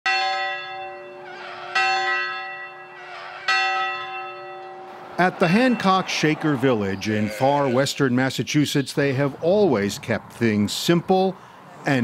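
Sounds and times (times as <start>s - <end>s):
bell ringing: 0.1s - 8.0s.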